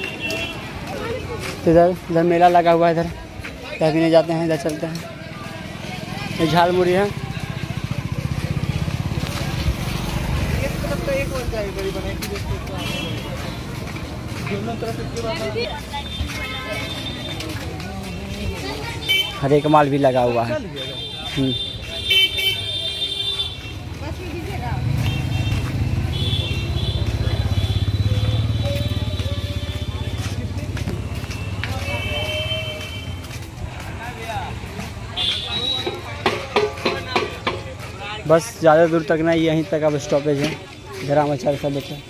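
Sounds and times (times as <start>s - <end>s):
vehicle horns: 0.0s - 0.8s, 11.8s - 13.7s, 16.0s - 17.6s, 19.0s - 24.0s, 25.0s - 30.3s, 30.9s - 33.5s, 35.1s - 37.4s.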